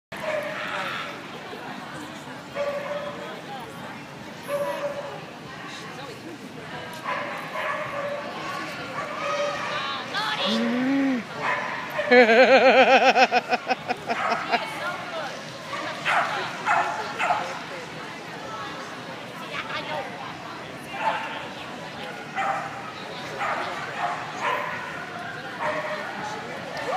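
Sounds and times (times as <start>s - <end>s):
background talk: 0.1s - 26.9s.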